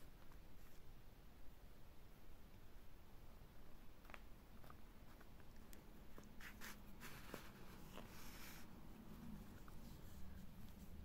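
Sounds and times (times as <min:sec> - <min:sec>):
hands rustling yarn: 0:03.9 - 0:11.0.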